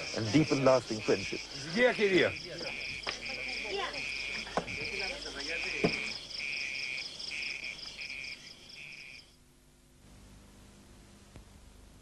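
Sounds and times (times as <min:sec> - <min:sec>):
insects chirping: 0:00.0 - 0:09.5.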